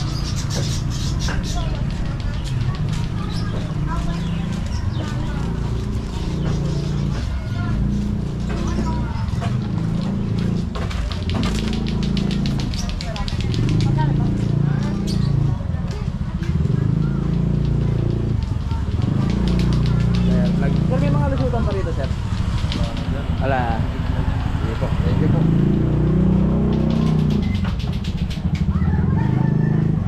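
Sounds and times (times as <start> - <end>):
motorcycle engine running: 0.0 - 30.0
people's voices: 0.0 - 30.0.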